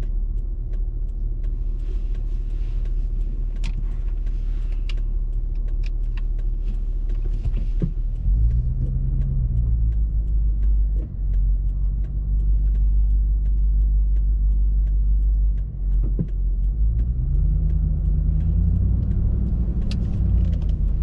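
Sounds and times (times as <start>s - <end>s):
car engine rumble from cabin: 0.0s - 21.0s
light ticking: 0.0s - 21.0s.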